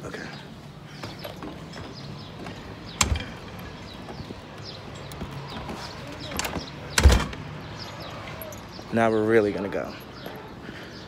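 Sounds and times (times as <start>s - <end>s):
door thudding shut: 3.0s - 3.4s, 6.4s - 7.4s.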